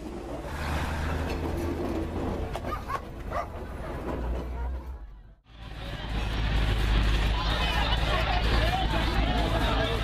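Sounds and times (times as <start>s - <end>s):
train passing rumble: 0.0s - 10.0s.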